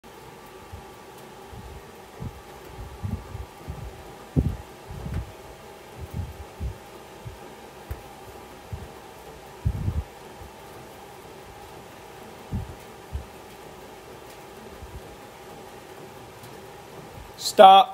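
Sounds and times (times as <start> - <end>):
steady background hum: 0.0 - 17.9.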